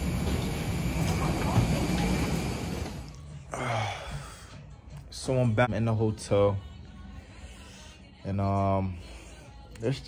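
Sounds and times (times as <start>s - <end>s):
muffled voices: 0.0s - 4.5s.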